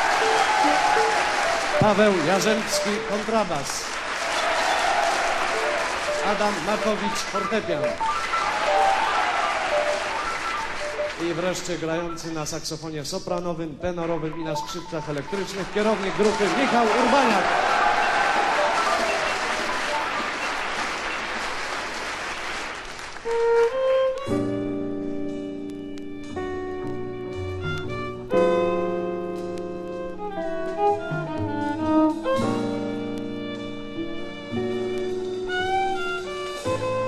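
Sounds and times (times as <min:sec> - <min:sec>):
audience applauding: 0:00.0 - 0:12.4, 0:15.1 - 0:23.8
announcer speaking: 0:01.7 - 0:03.9, 0:06.1 - 0:09.0, 0:10.1 - 0:17.7.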